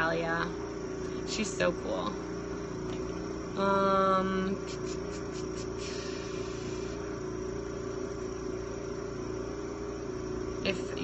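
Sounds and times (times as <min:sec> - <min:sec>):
power washer running: 0:02.1 - 0:07.8.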